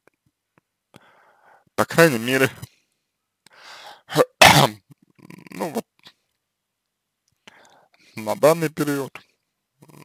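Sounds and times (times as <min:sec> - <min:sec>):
faint intake of breath: 0:01.0 - 0:01.7, 0:03.5 - 0:04.1, 0:07.4 - 0:08.2.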